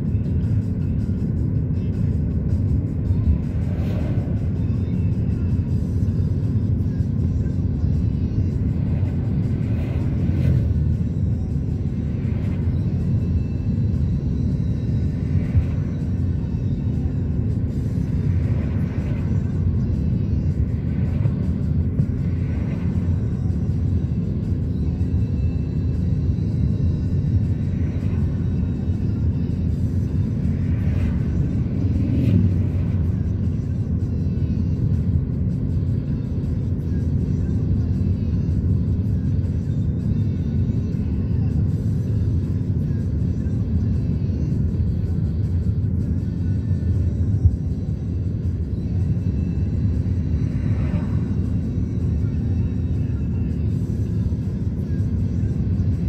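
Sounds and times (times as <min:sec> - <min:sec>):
car road and engine rumble: 0:00.0 - 0:56.0
music playing: 0:00.0 - 0:56.0.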